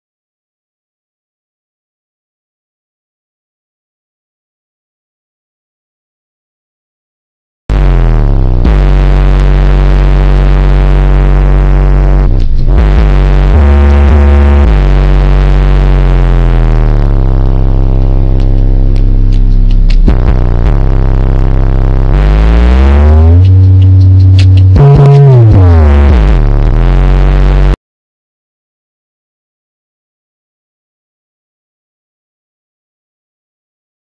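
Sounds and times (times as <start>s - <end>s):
deep subwoofer bass notes: 7.7s - 27.8s.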